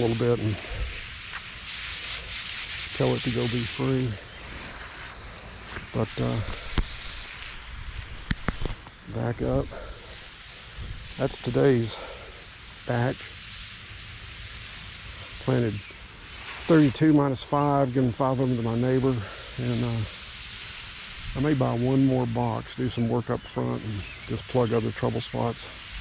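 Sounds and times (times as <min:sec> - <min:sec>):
hose nozzle hissing: 0:00.0 - 0:26.0
water spray falling on grass: 0:00.0 - 0:26.0.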